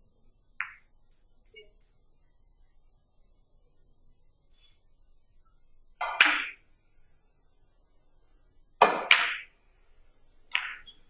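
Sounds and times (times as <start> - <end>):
billiard balls clicking: 0.6 - 1.9, 10.5 - 11.0
cue tip striking ball: 8.8 - 9.4.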